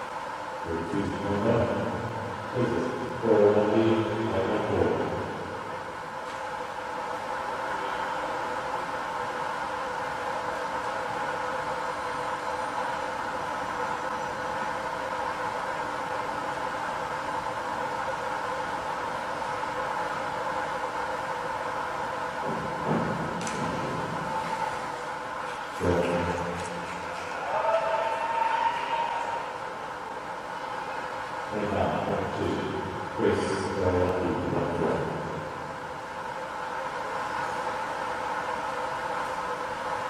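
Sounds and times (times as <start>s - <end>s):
indoor pool hall hum: 0.0s - 40.0s
people shouting: 27.2s - 29.6s.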